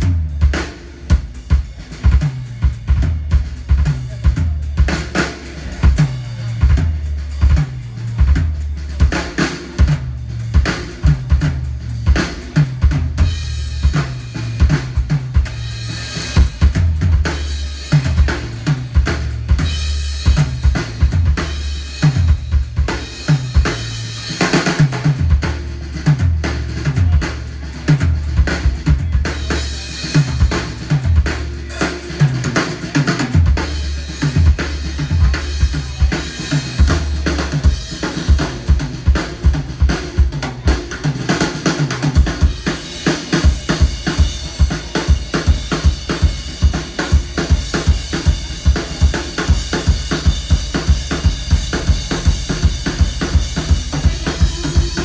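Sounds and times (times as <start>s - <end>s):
bass line: 0.0s - 55.0s.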